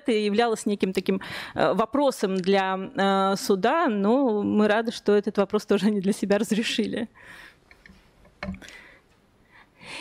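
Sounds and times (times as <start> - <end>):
intake of breath: 7.2 - 7.7.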